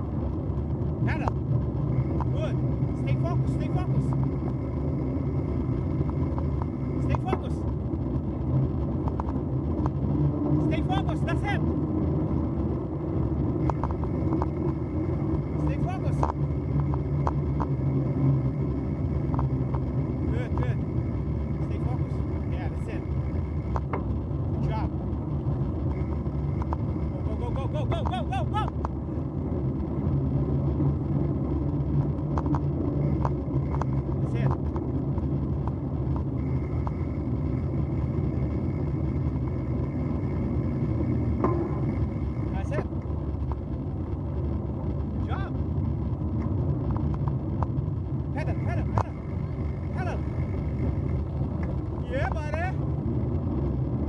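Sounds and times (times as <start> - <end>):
bicycle tyres rolling on gravel: 0.0 - 54.0.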